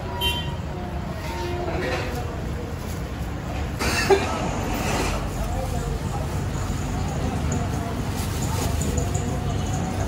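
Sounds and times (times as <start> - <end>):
road traffic rumble: 0.0 - 10.0
vehicle horn tones: 0.1 - 0.6.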